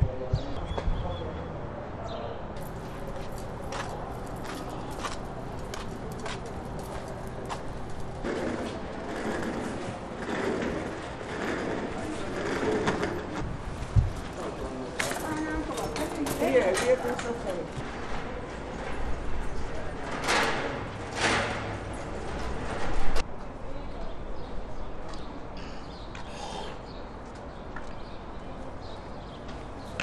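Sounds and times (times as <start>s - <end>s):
indistinct distant voices: 0.0s - 26.9s.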